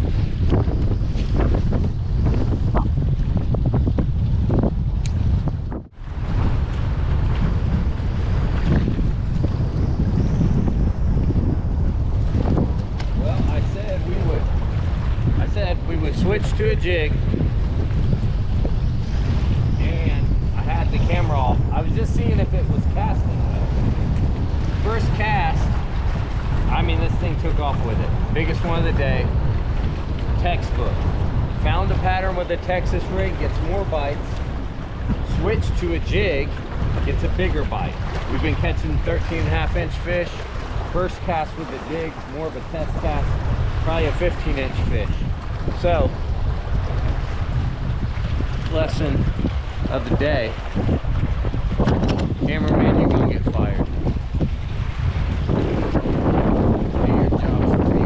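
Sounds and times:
choppy water: 0.0 - 58.0
wind buffeting microphone: 0.0 - 58.0.

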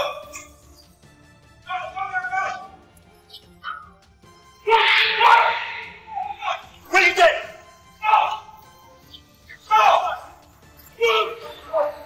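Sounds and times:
dog barking: 4.7 - 6.6.

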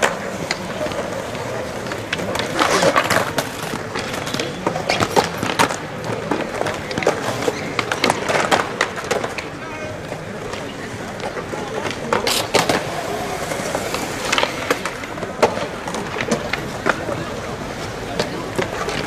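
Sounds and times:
skateboard clacks: 0.0 - 19.0
skateboard wheels rolling on concrete: 0.0 - 19.0.

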